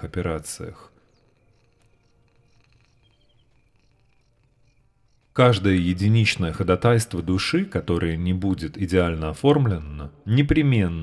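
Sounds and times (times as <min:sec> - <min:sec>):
faint high chirps: 0:00.4 - 0:06.4.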